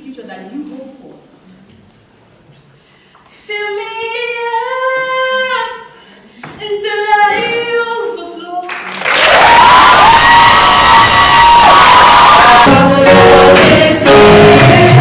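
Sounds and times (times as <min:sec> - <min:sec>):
women singing a cappella: 0:03.3 - 0:08.7, 0:12.5 - 0:15.0
audience applause and cheering: 0:08.8 - 0:15.0
long high whoop: 0:09.3 - 0:12.7
gospel choir with accompaniment: 0:10.3 - 0:15.0.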